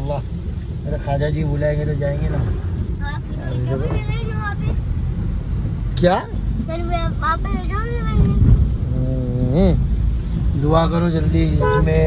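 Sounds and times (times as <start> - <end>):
car cabin road rumble: 0.0 - 12.0
child speaking: 3.0 - 4.8, 6.7 - 8.6.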